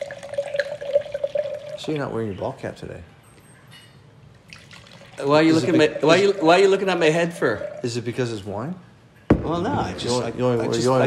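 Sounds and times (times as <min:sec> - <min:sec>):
wine pouring into a glass: 0:00.0 - 0:02.2, 0:04.5 - 0:08.4.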